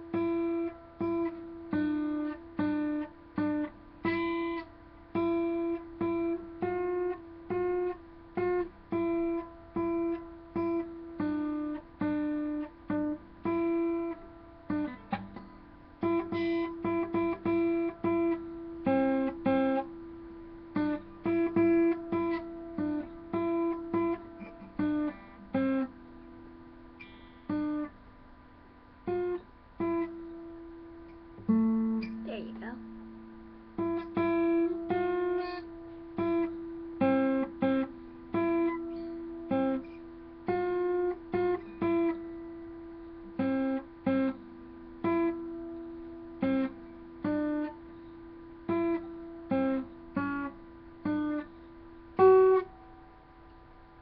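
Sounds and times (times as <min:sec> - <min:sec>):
acoustic guitar chords strummed: 0:00.0 - 0:54.0.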